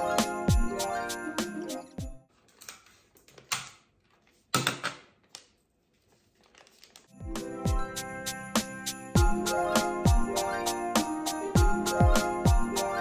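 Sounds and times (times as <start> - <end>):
background music with a beat: 0.0 - 2.2, 7.2 - 13.0
paper rustling and crinkling: 2.3 - 4.5, 5.2 - 7.1.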